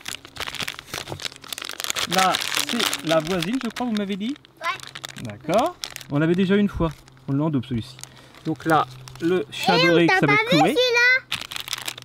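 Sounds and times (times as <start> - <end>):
plastic packets crinkling: 0.0 - 12.0.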